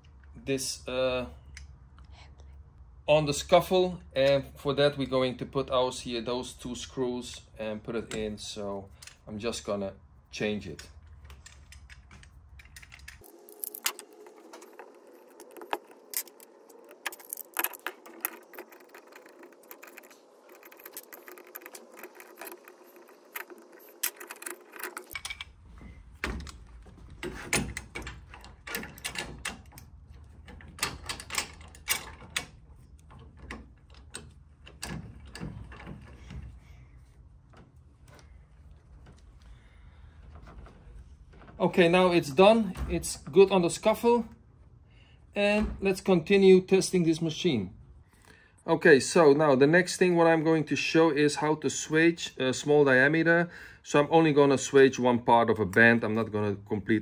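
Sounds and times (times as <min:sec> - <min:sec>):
metal parts clicking and clinking: 0:10.6 - 0:25.6, 0:26.2 - 0:36.4.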